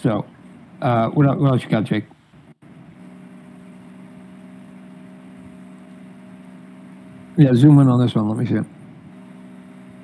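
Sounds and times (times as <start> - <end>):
low hum through voice chat: 3.8 - 9.9.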